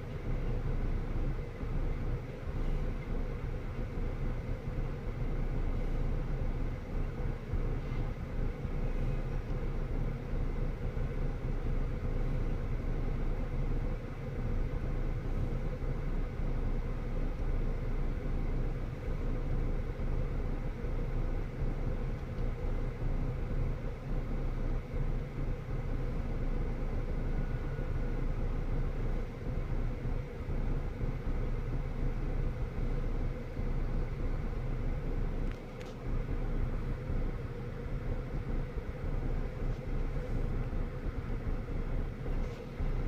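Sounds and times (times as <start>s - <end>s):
car idling from inside cabin: 0.0s - 43.0s.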